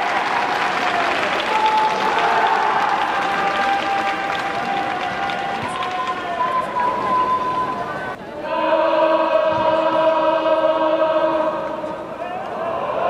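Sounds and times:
crowd chanting in unison: 0:00.0 - 0:13.0.

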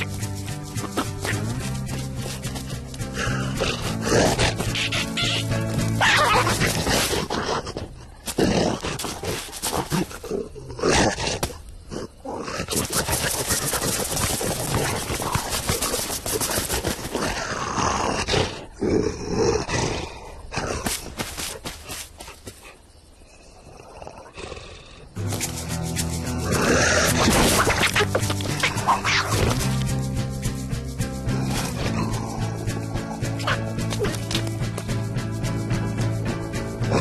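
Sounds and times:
scrambling and scuffling noise: 0:00.0 - 0:10.2, 0:12.7 - 0:17.4, 0:25.2 - 0:35.5
cartoon animal growls and roars: 0:03.1 - 0:21.0, 0:26.2 - 0:29.7, 0:31.2 - 0:33.6.

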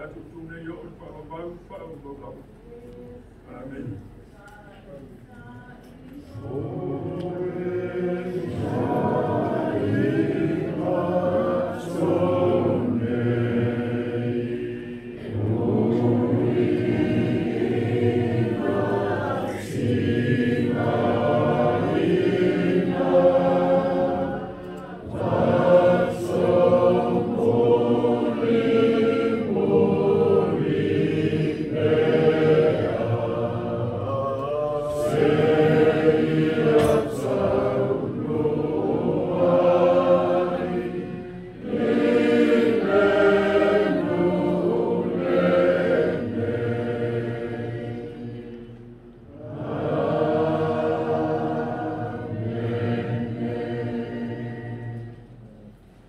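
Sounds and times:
congregation singing a hymn: 0:05.8 - 0:56.0.

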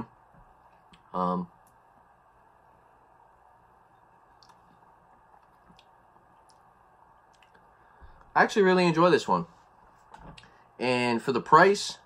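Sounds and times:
faint clicks: 0:04.4 - 0:04.7.

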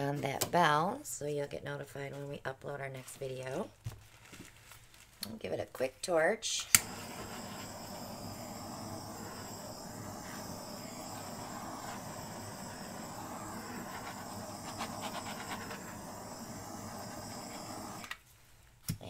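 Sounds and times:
torch flame hissing: 0:06.7 - 0:18.2.

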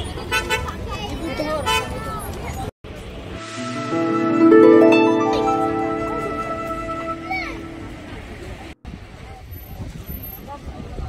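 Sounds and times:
traffic: 0:00.0 - 0:03.4.

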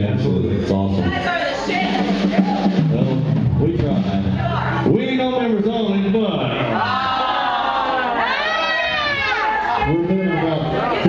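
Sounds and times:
live band music: 0:00.0 - 0:07.0.

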